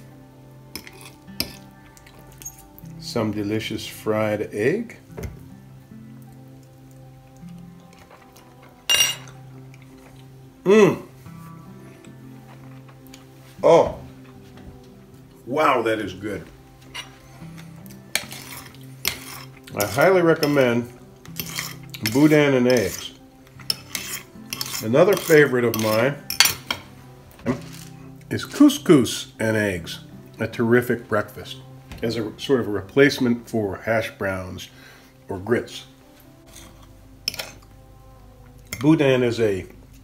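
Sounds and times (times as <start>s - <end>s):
quiet background music: 0.0s - 40.0s
cutlery clinking on plate: 8.9s - 9.4s, 23.6s - 26.9s.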